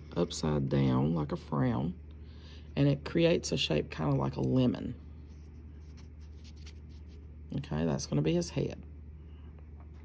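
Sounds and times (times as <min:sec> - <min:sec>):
steady low hum: 0:00.0 - 0:10.0
faint paper rustling: 0:05.1 - 0:07.3.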